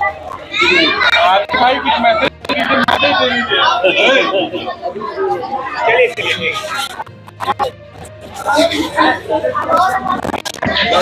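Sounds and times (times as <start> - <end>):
excited people talking: 0.0 - 11.0.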